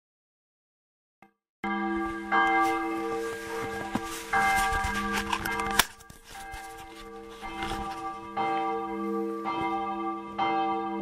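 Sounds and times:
large church bell tolling: 1.6 - 11.0.

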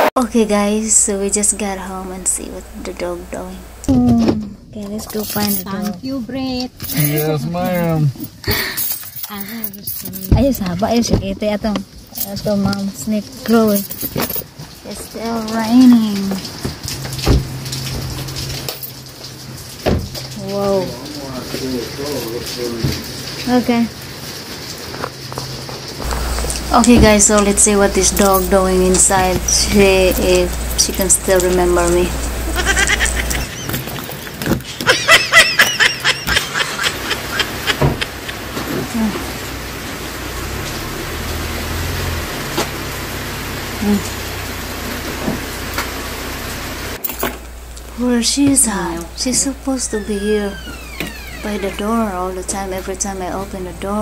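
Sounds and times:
car engine idling: 0.0 - 8.9, 26.0 - 34.2, 36.8 - 49.8
low steady hum: 0.0 - 12.9, 26.0 - 33.6
rain falling: 0.0 - 54.0.

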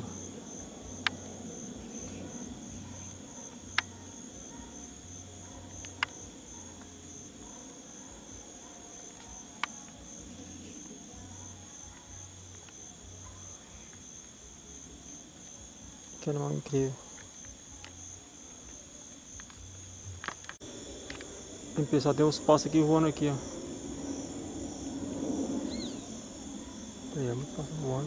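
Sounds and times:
insects trilling: 0.0 - 28.0.

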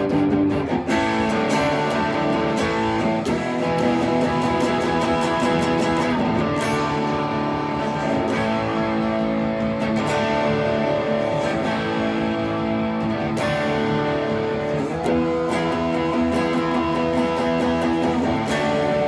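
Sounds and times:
overdriven electric guitar chords: 0.0 - 19.0.

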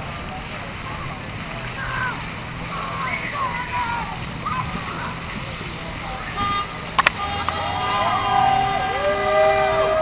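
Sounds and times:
indistinct voices of passers-by: 0.0 - 10.0
low hum of traffic: 0.0 - 10.0.

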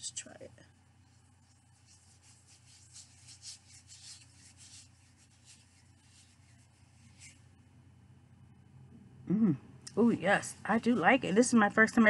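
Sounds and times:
hands rubbing lotion on skin: 1.0 - 7.6.

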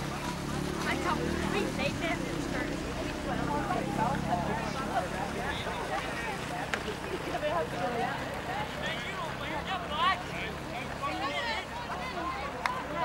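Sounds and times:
players and spectators shouting: 3.4 - 13.0.

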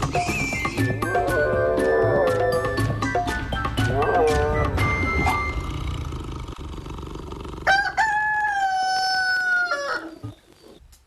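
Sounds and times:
rooster crowing: 7.6 - 10.2.

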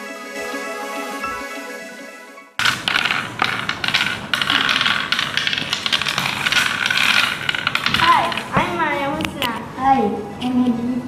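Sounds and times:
background music: 0.0 - 3.2
playing pieces clicking on wooden board: 2.6 - 9.6.

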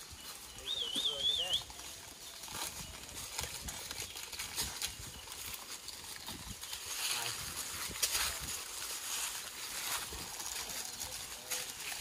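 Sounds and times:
dry leaves crackling underfoot: 0.0 - 12.0.

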